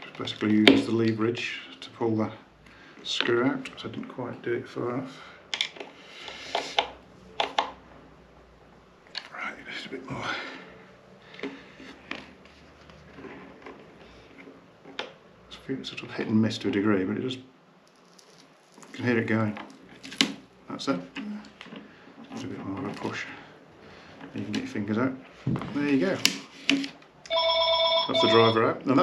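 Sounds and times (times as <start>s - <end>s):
telephone ringing: 27.3s - 28.8s.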